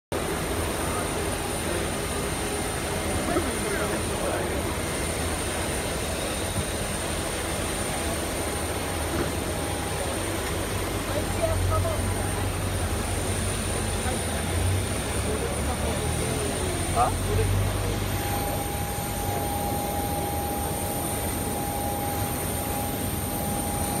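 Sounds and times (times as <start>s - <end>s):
jet engine whine and rumble: 0.1s - 24.0s
murmur of voices: 0.2s - 24.0s.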